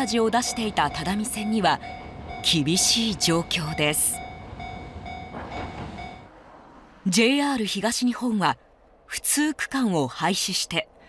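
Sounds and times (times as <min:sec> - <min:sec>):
diesel railcar rumble: 0:00.0 - 0:11.0.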